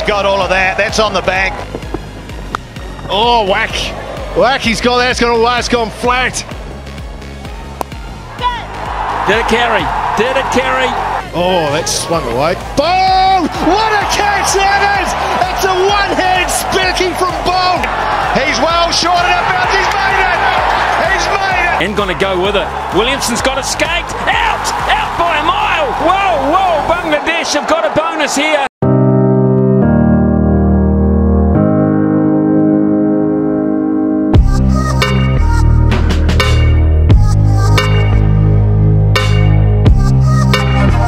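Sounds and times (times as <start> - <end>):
background music with bass line: 0.0 - 26.9, 28.8 - 41.0
stadium crowd noise: 0.0 - 28.7
excited commentator voice: 8.3 - 28.7.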